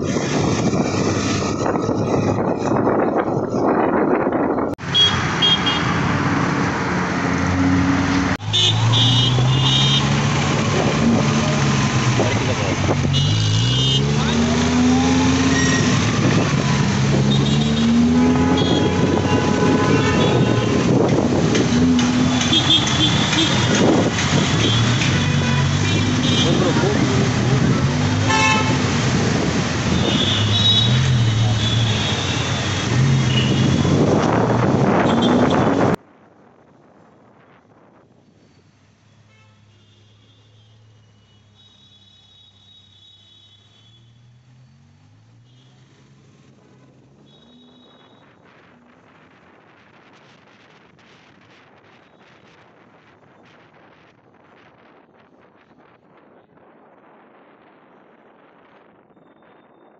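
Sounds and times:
busy road traffic: 0.0 - 59.9
vehicle horns honking: 4.8 - 6.0, 8.4 - 10.2, 13.0 - 14.9, 17.2 - 21.0, 22.1 - 27.0, 28.2 - 29.0, 29.9 - 34.1, 34.9 - 36.0, 39.2 - 44.2, 46.7 - 48.3.

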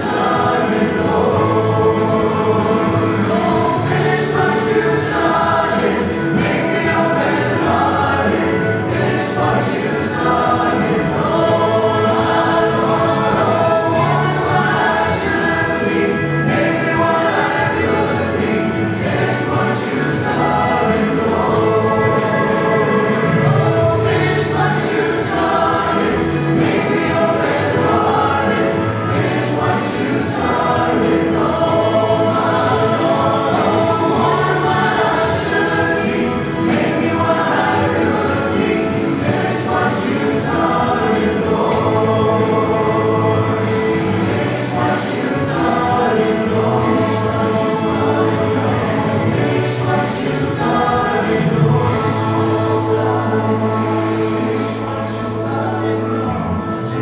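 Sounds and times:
women's choir singing: 0.0 - 57.0.

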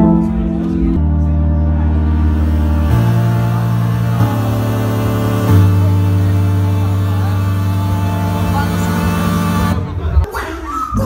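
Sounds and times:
low synthesizer drone: 0.0 - 10.3.

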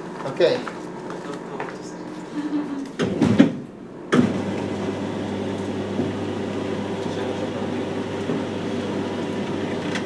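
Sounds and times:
motor humming: 2.2 - 10.0
motor starting clunk: 2.9 - 10.0.

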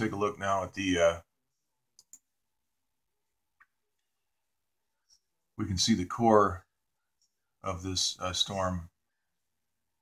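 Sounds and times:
computer mouse clicks: 1.9 - 2.3.

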